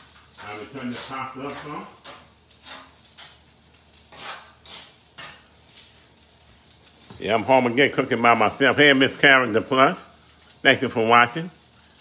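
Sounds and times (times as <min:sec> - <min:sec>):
utensil scraping a pan: 0:00.0 - 0:06.2
faint sizzle of frying: 0:00.0 - 0:12.0.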